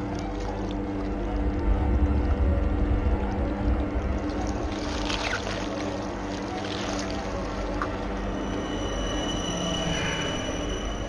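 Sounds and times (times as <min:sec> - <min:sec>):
low drone of held tones: 0:00.0 - 0:11.0.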